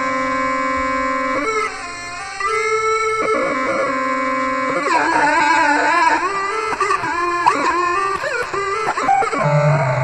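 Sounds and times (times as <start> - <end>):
electronic tones sliding in pitch: 9.3 - 10.0.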